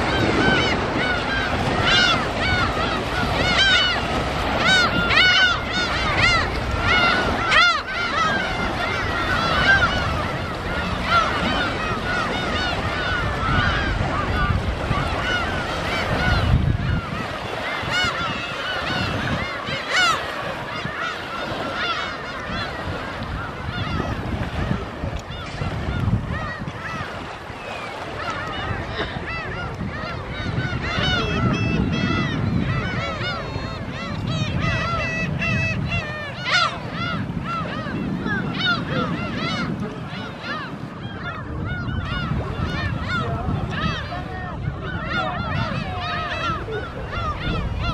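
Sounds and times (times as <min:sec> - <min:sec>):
gulls calling: 0:00.0 - 0:47.9.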